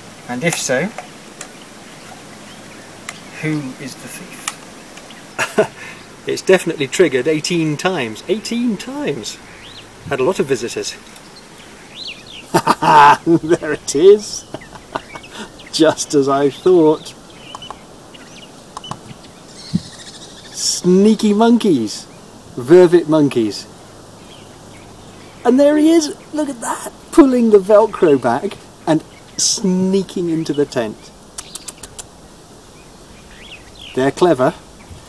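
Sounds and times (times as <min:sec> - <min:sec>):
bird chirps: 0:00.0 - 0:22.5, 0:23.6 - 0:35.0
outdoor background hiss: 0:00.0 - 0:35.0
sharp clicks: 0:17.5 - 0:17.8, 0:18.7 - 0:19.0, 0:31.2 - 0:32.1.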